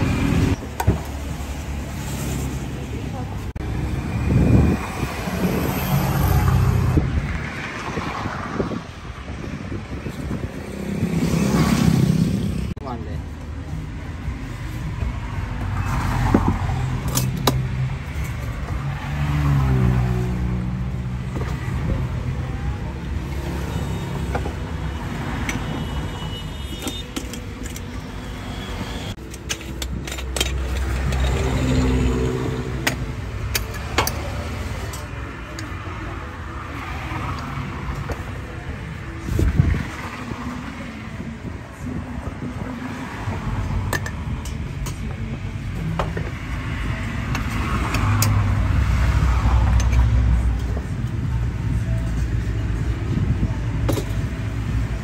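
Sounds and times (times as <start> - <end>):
road traffic passing: 0.0 - 55.0.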